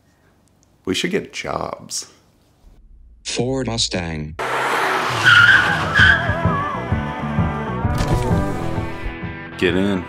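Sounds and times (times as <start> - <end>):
tire squeal: 4.4 - 6.7.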